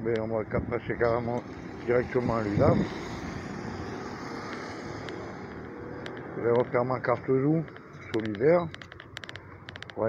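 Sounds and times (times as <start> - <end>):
street traffic noise: 0.0 - 10.0
faint clicks: 4.4 - 6.8, 7.6 - 10.0.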